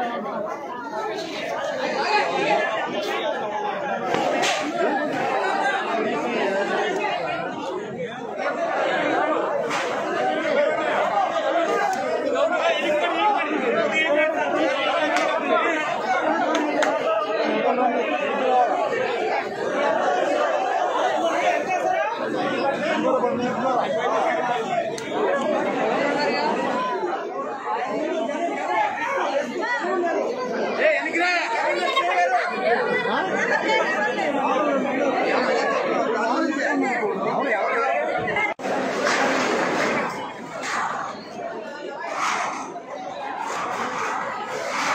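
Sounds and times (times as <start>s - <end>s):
crowd chatter: 0.0s - 44.9s.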